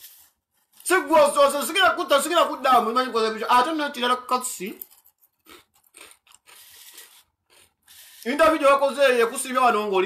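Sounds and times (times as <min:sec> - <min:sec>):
man speaking: 0:00.8 - 0:04.8, 0:08.2 - 0:10.0.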